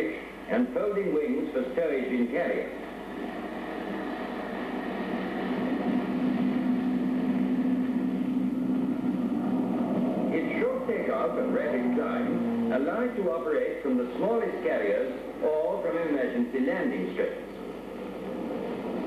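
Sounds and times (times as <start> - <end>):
turboprop engine droning: 0.0 - 19.0.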